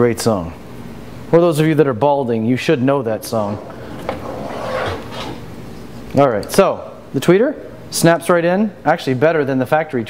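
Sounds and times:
plastic rubbing: 0:03.4 - 0:05.8.

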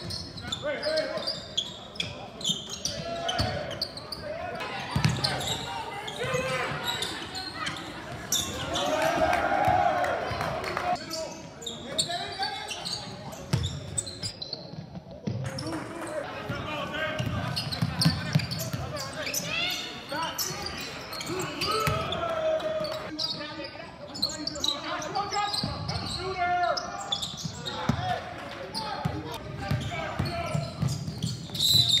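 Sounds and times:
sneakers squeaking: 0:00.0 - 0:09.3, 0:10.3 - 0:32.0
voices echoing in gym: 0:00.0 - 0:32.0
basketball bouncing on court: 0:04.9 - 0:05.5, 0:13.5 - 0:13.8, 0:17.1 - 0:18.9, 0:29.0 - 0:31.6.

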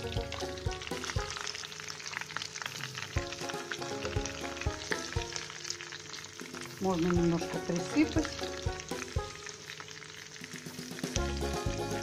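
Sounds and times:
background music with low notes: 0:00.0 - 0:12.0
fish sizzling in oil: 0:00.0 - 0:12.0.

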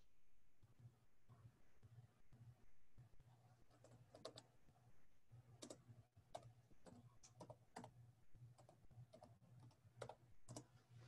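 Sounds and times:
typing on computer keyboard: 0:03.7 - 0:04.5, 0:05.6 - 0:10.8.

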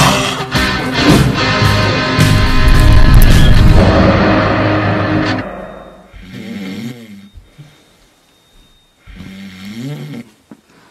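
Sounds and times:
man snoring: 0:06.1 - 0:07.8, 0:09.1 - 0:10.4.

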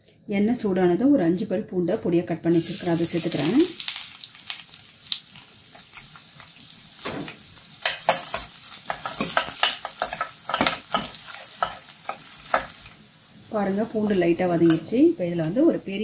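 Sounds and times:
garlic sizzling in oil: 0:02.5 - 0:16.0
metal spoon scraping a pan: 0:07.8 - 0:13.0, 0:14.0 - 0:15.0.

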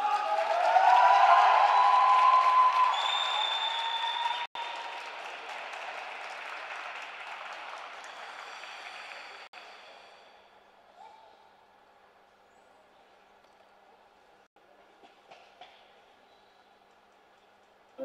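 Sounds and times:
audience applause in arena: 0:00.0 - 0:09.7.

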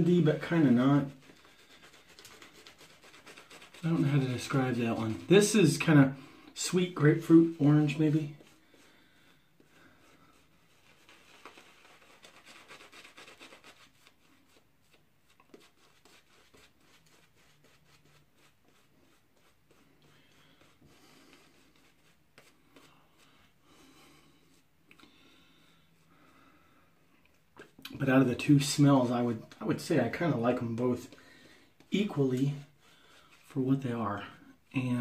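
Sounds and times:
shaving brush swishing lather: 0:00.0 - 0:24.7, 0:27.6 - 0:34.0.

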